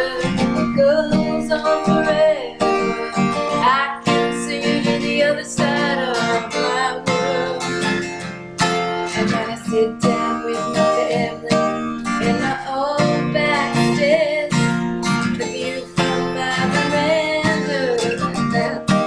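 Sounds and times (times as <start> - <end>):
acoustic guitar strumming: 0.0 - 19.0
woman singing: 0.0 - 19.0.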